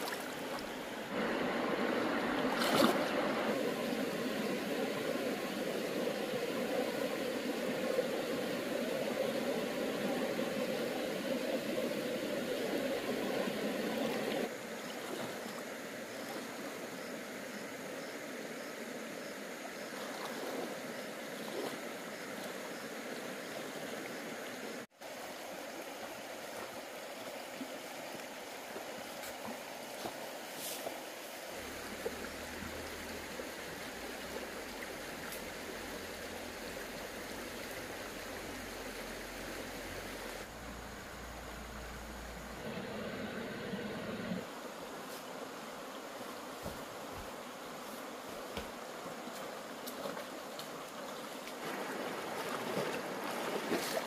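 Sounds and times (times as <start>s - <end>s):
river flowing over rocks: 0.0s - 14.8s, 25.0s - 54.0s.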